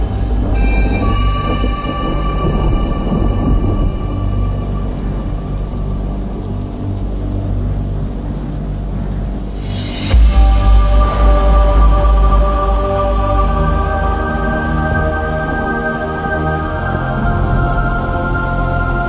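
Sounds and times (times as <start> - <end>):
bright rush of noise: 0.0 - 19.0
rumbling thunder-like noise: 0.0 - 19.0.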